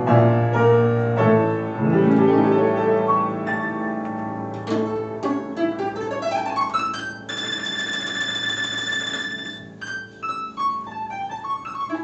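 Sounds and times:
piano accompaniment: 0.0s - 12.0s
domras playing: 6.3s - 10.2s.

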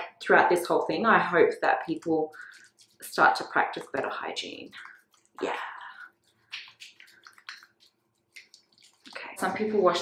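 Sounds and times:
wet hands rubbing together: 1.6s - 10.0s.

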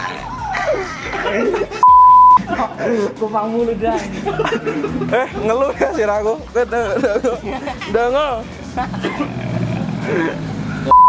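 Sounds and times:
street traffic rumble: 0.0s - 11.0s
vehicle passing: 0.0s - 11.0s
loud steady beep tone: 1.8s - 2.4s.

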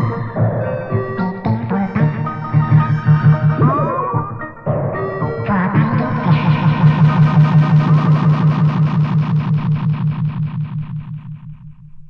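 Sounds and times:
stuttering synthesizer electronic music: 0.0s - 12.0s.

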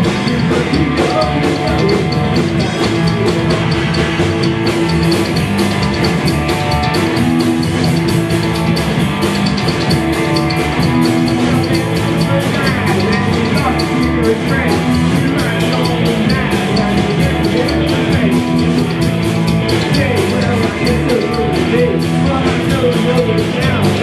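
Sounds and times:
drum kit: 0.0s - 24.0s
electric guitar: 0.0s - 24.0s
upright bass: 0.0s - 24.0s.

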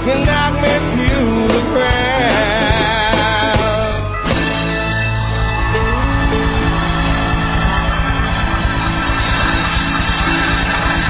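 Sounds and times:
rock band playing instrumental: 0.0s - 11.0s.

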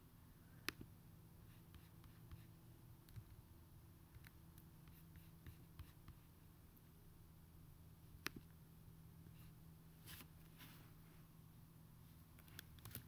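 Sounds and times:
low steady hum: 0.0s - 13.0s
computer mouse clicks: 3.0s - 3.4s, 12.4s - 13.0s.

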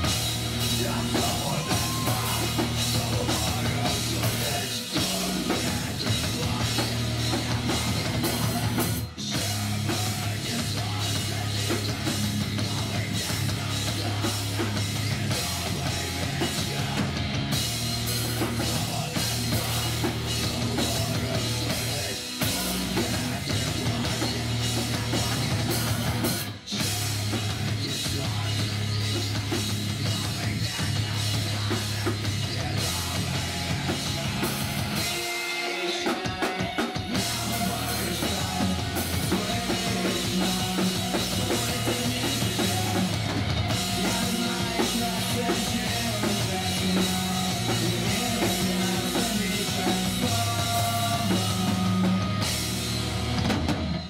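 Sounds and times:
heavy metal band playing live: 0.0s - 54.0s
pounding drum kit: 0.0s - 54.0s.

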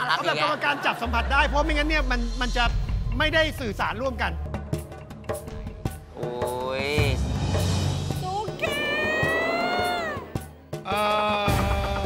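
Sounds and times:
background music: 0.0s - 12.0s
woman screaming: 8.6s - 10.4s.

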